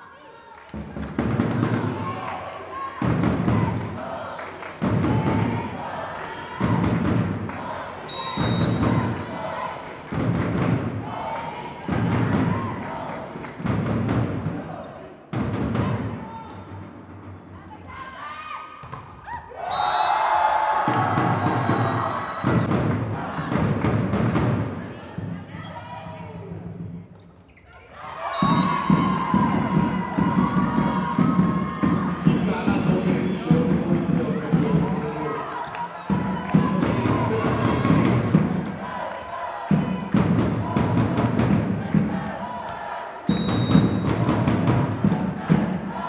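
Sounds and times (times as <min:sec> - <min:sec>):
many voices chanting: 0:00.7 - 0:16.4, 0:20.4 - 0:25.4, 0:28.0 - 0:46.0
deep drum beats: 0:03.0 - 0:04.0, 0:04.8 - 0:05.9, 0:06.5 - 0:07.6, 0:08.5 - 0:09.4, 0:10.0 - 0:14.6, 0:20.8 - 0:25.5, 0:28.4 - 0:35.1, 0:36.1 - 0:39.0, 0:39.6 - 0:42.6, 0:43.3 - 0:46.0.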